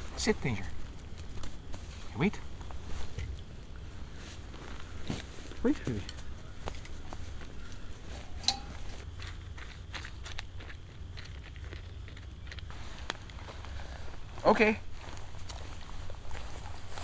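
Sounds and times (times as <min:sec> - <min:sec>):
dog food and bowl rustling: 0:00.0 - 0:17.0.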